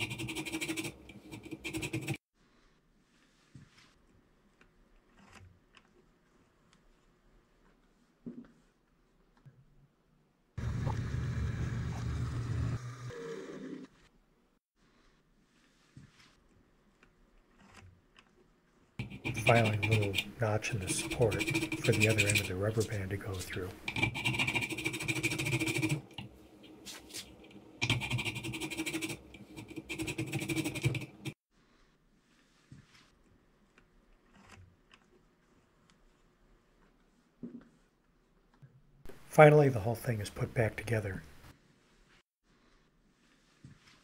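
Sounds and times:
file rasping on brass rod: 0.0 - 2.2, 19.0 - 22.9, 23.9 - 26.1, 27.9 - 31.4
drill press motor hum: 10.6 - 14.0.

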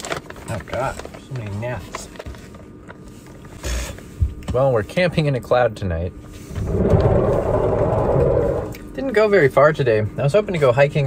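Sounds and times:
van sliding door rumbling: 6.5 - 8.8.

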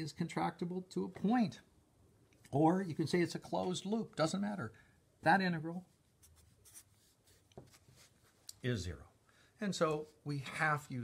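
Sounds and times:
marker scratching on paper: 5.8 - 8.4.

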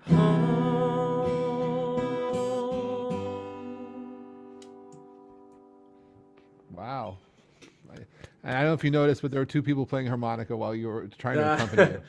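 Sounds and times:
acoustic guitar chord ringing: 0.0 - 6.7.

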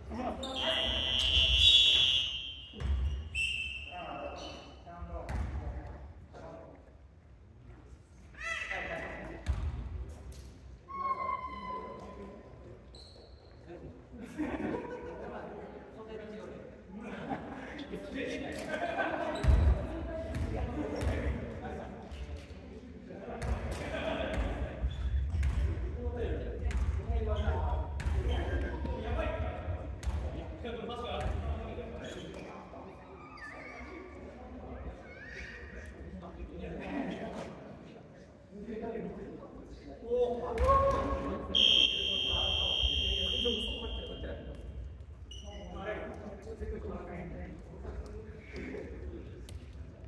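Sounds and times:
players' voices: 0.0 - 7.0, 13.6 - 50.0.

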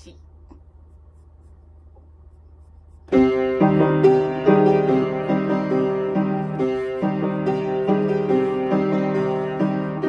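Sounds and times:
low steady hum: 0.0 - 6.9.

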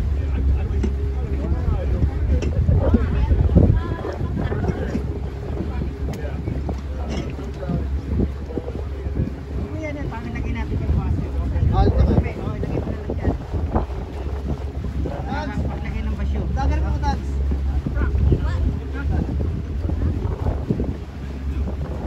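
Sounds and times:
people talking: 0.0 - 22.0
wind rumble on microphone: 0.0 - 22.0.

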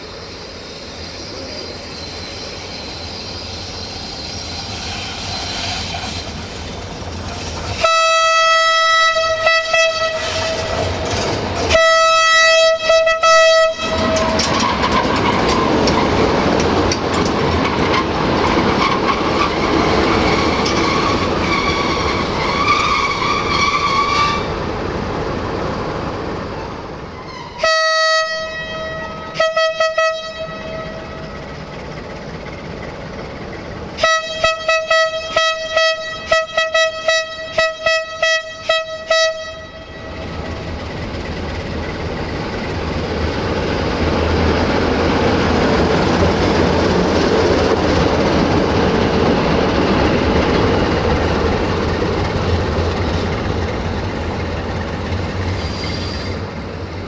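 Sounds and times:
train engine and wheels rushing past: 0.0 - 57.0
locomotive horn blasts: 7.8 - 10.9, 11.7 - 14.8, 27.4 - 31.3, 34.0 - 40.3.

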